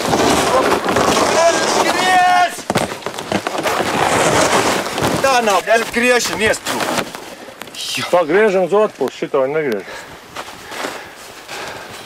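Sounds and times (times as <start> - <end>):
footsteps crunching in snow: 0.0 - 7.4, 10.3 - 12.0.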